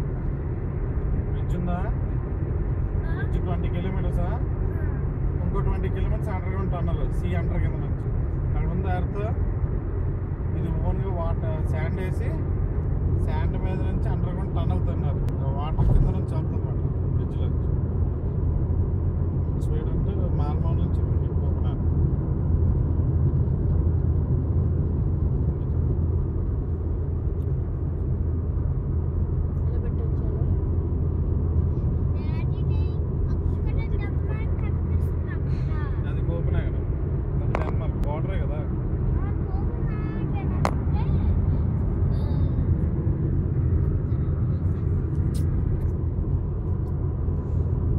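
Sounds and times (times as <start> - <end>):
road and engine rumble in car: 0.0 - 47.9.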